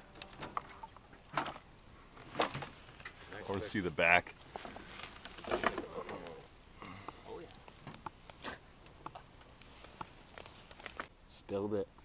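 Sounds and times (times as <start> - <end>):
light rustling: 2.2 - 11.1.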